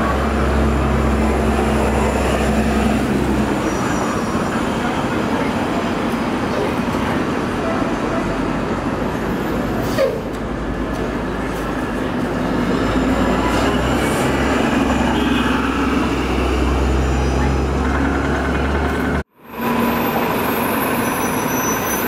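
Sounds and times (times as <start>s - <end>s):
bus engine droning: 0.0s - 22.0s
bus idling: 0.0s - 22.0s
street traffic noise: 0.0s - 22.0s.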